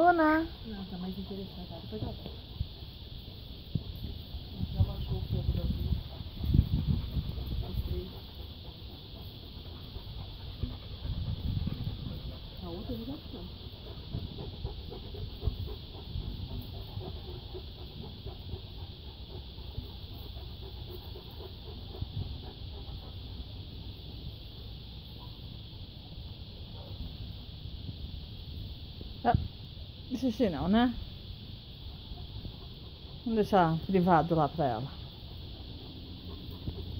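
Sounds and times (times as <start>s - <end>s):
high-pitched insect drone: 0.0s - 36.9s
wind rumble on microphone: 3.7s - 8.4s, 10.5s - 17.2s.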